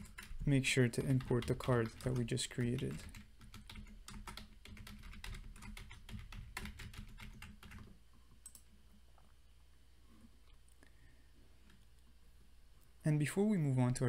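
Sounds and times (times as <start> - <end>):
typing on computer keyboard: 0.0 - 8.7
faint low hum: 0.0 - 14.0.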